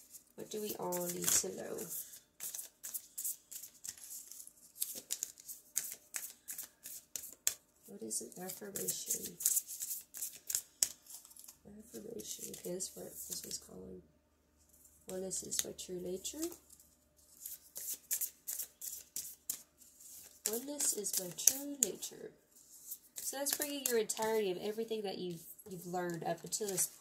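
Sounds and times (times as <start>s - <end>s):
cards being shuffled: 0.0s - 7.6s, 8.4s - 13.6s, 15.4s - 15.8s, 16.4s - 24.7s, 25.3s - 27.0s.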